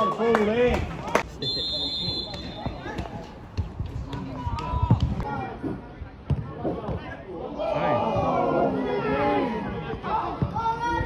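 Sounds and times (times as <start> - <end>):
players shouting: 7.4 - 11.0.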